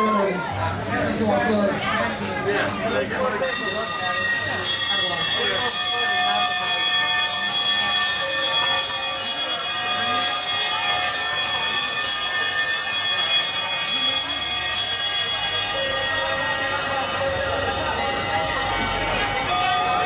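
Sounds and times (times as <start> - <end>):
ringing cymbals: 3.4 - 20.0.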